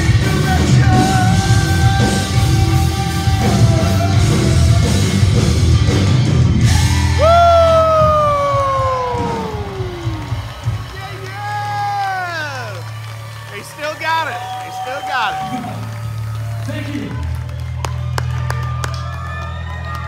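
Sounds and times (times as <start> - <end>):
live rock band playing: 0.0 - 14.0
crowd whooping: 6.6 - 20.0.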